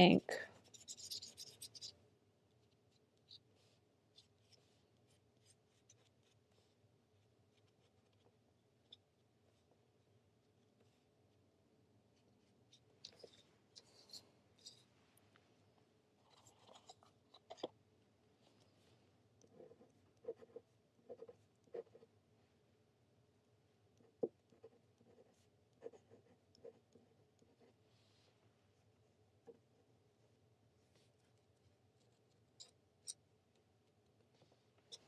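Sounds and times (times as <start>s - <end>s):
pen nib scratching on card: 0.6s - 9.7s, 19.4s - 22.1s.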